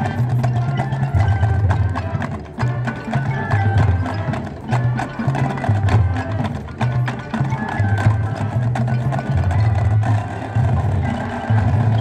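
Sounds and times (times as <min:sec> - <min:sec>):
mallet keyboard notes: 0:00.0 - 0:12.0.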